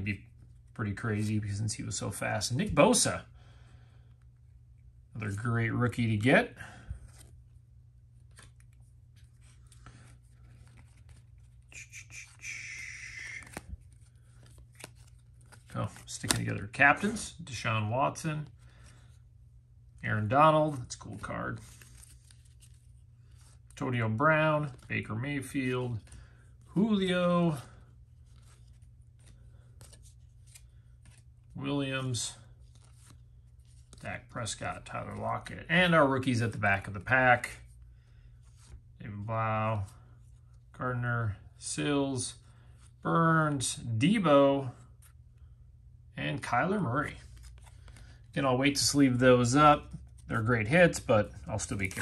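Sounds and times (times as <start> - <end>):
trading cards flipped by hand: 8.1 - 17.2, 20.7 - 23.8, 28.2 - 31.5, 32.6 - 34.0.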